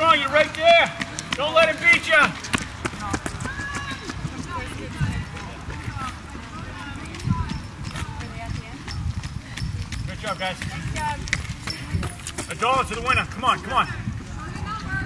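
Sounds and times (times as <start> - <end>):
running footsteps on wet asphalt: 0.0 - 15.0.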